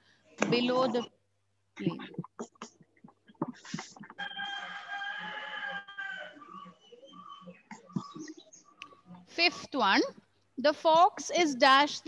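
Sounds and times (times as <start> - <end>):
rooster crowing: 4.2 - 6.7.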